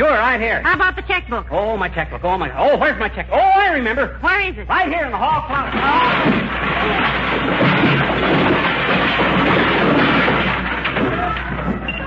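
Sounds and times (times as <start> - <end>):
junk clattering out of closet: 5.4 - 12.0.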